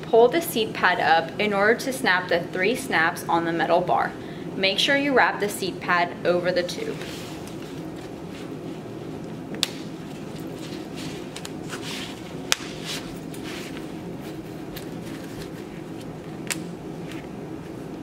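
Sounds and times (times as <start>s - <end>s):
fabric rustling: 10.0s - 16.2s.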